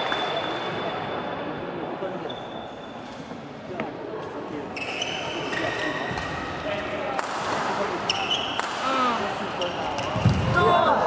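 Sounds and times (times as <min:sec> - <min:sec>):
spectators' voices: 0:03.4 - 0:11.0
shoes squeaking on court floor: 0:04.7 - 0:06.5, 0:08.0 - 0:08.6, 0:09.6 - 0:10.4.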